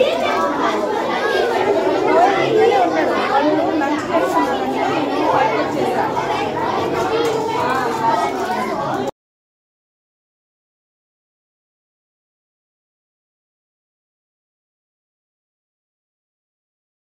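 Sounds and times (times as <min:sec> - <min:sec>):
crowd chatter: 0:00.0 - 0:09.2.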